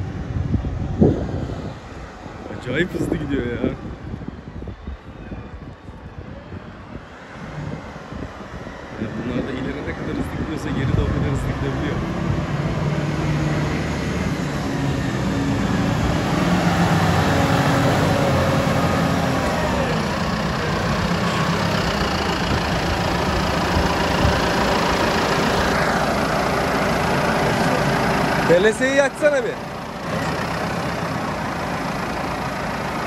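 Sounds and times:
tyre and road noise: 0.0 - 33.0
tractor engine running: 9.6 - 33.0.

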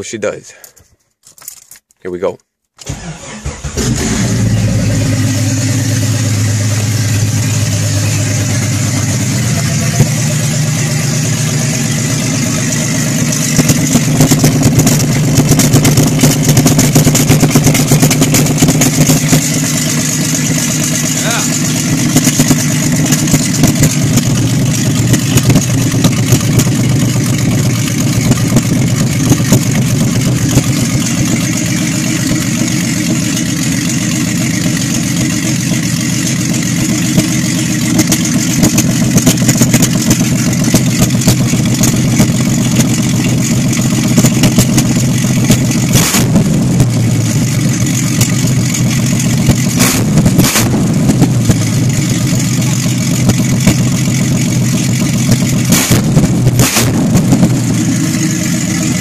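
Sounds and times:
car engine cranking and starting: 2.8 - 59.0
car engine running: 2.9 - 59.0.

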